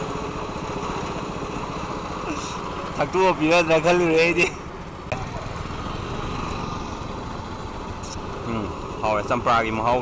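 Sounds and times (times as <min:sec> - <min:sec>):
motorcycle engine rumbling: 0:00.0 - 0:10.0.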